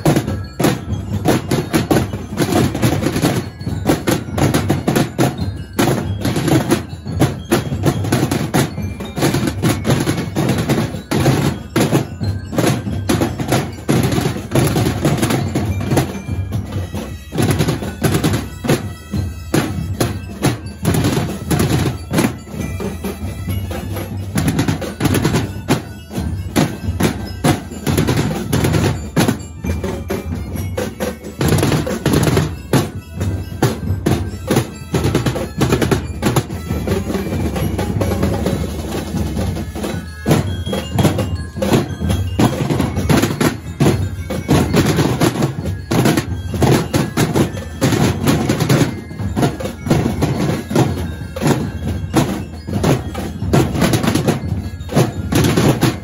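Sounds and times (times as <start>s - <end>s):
marching drums beaten hard: 0.0s - 56.0s.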